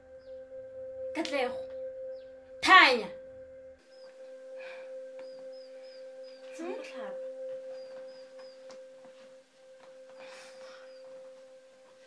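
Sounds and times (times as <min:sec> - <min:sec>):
faint high chirps: 0:00.0 - 0:12.0
steady ringing tone: 0:00.0 - 0:12.0.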